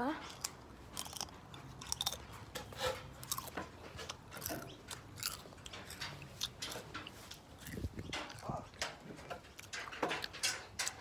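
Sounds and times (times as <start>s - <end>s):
chewing crunchy chips: 0.2s - 10.4s.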